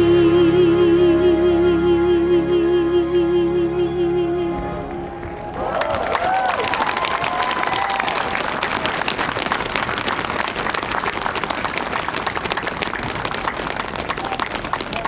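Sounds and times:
audience applauding: 4.8 - 15.0.

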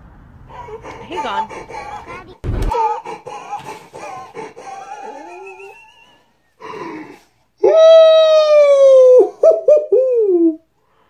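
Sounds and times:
man howling: 4.1 - 10.7.

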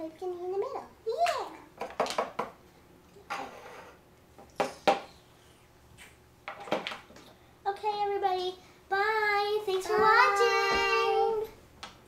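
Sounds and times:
girl singing: 8.9 - 11.6.

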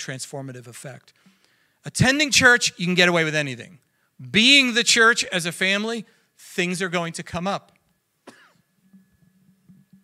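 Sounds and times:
man coughing quietly: 8.2 - 8.7.

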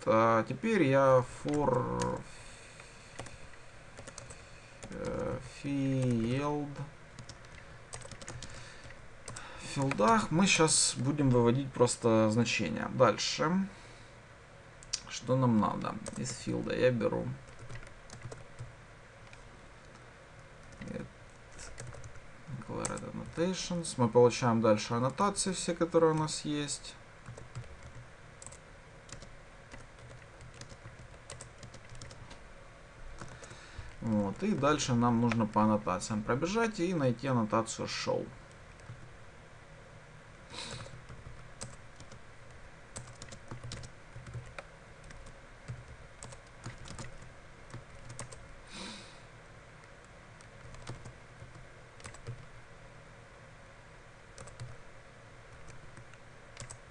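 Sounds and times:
man talking: 0.0 - 2.3, 4.9 - 6.9, 9.6 - 13.7, 15.0 - 17.4, 20.8 - 21.1, 22.5 - 27.0, 34.0 - 38.4
computer keyboard keystrokes: 3.2 - 3.4, 4.0 - 5.2, 7.2 - 10.3, 17.5 - 20.0, 20.6 - 22.2, 27.3 - 32.4, 33.2 - 34.6, 40.7 - 42.2, 43.0 - 48.4, 50.4 - 52.5, 54.4 - 54.8, 55.5 - 56.8
keyboard keystroke clicks: 55.6 - 56.8.

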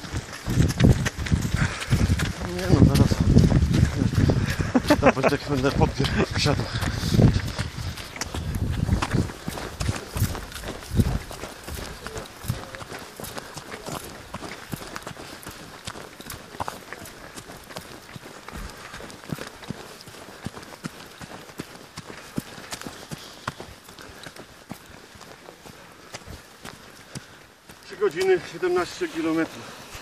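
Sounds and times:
running footsteps on dirt trail: 0.0 - 30.0.

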